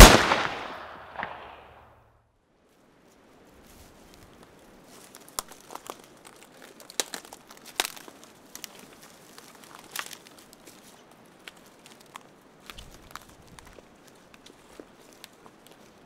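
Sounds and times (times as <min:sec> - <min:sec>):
twigs crackling and snapping: 0:03.5 - 0:16.0.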